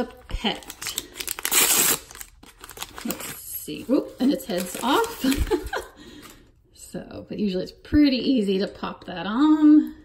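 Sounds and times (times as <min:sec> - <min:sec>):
plastic bag crinkling and tearing: 0:00.2 - 0:06.4.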